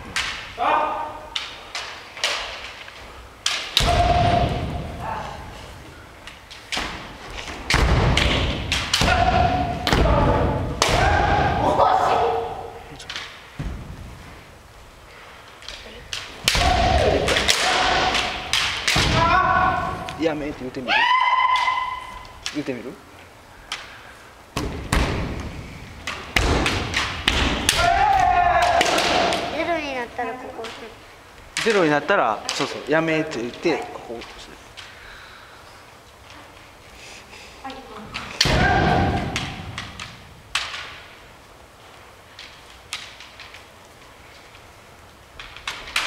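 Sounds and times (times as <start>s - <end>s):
bamboo sword strikes: 3.4s - 4.7s, 7.7s - 11.6s, 16.1s - 19.7s
bamboo swords striking: 3.4s - 5.1s, 6.5s - 12.3s, 16.1s - 20.0s, 24.6s - 29.6s, 38.2s - 41.0s
person shouting: 9.0s - 12.9s, 20.8s - 22.2s, 27.7s - 29.4s
drawn-out shouts: 20.9s - 22.2s.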